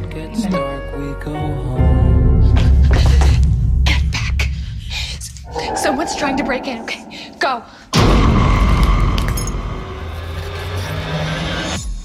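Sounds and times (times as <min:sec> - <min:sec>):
deep cinematic boom: 0:05.5 - 0:10.3.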